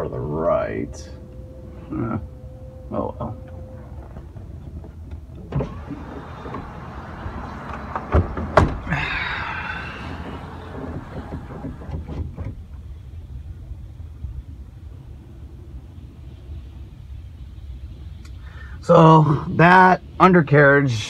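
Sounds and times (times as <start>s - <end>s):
low rumble inside truck cab: 0.0s - 21.0s
power window motor whining: 5.1s - 12.6s
knocks: 5.7s - 12.6s.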